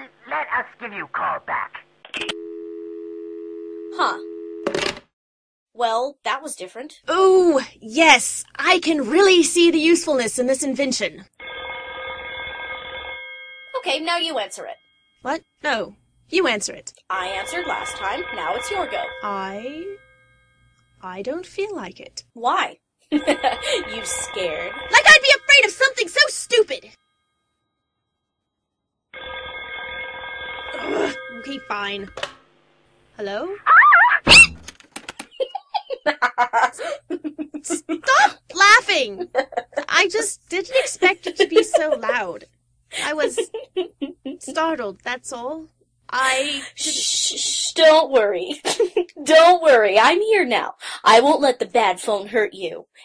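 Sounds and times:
telephone ringing: 0:11.4 - 0:15.2, 0:17.1 - 0:21.0, 0:23.1 - 0:27.6, 0:29.2 - 0:33.0
telephone dial tone: 0:17.2 - 0:19.8.

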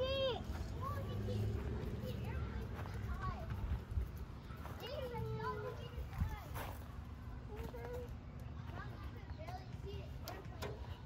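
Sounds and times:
footsteps on wood-chip mulch: 0:00.0 - 0:11.0.

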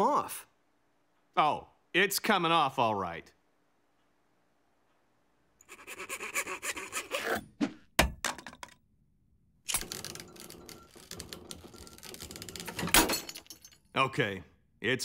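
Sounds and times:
saws grinding and scraping on metal: 0:05.6 - 0:07.6.

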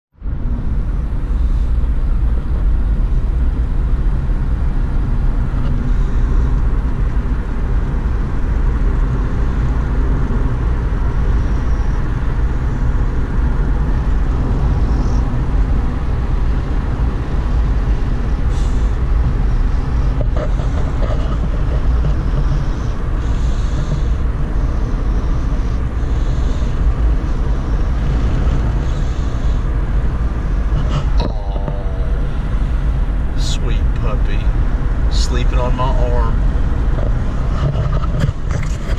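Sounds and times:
car road and engine rumble: 0:00.1 - 0:38.9.

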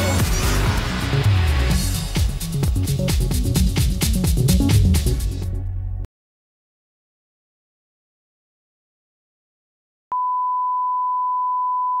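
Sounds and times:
steady test tone beep: 0:10.1 - 0:12.0.

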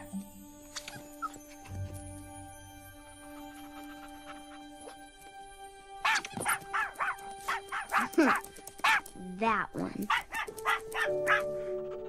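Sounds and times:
soft background music: 0:00.0 - 0:12.0
puppy yipping: 0:00.7 - 0:01.7, 0:06.0 - 0:09.0, 0:10.1 - 0:11.5.

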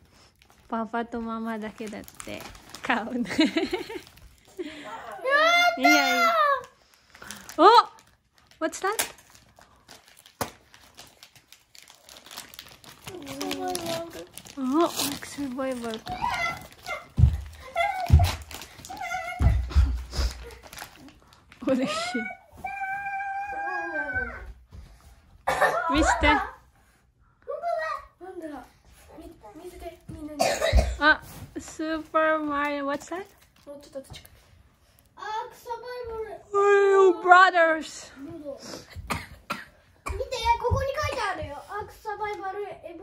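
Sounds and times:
paper crumpling and tearing: 0:01.5 - 0:04.6, 0:05.9 - 0:23.0
person coughing: 0:25.4 - 0:25.9, 0:30.4 - 0:31.0.

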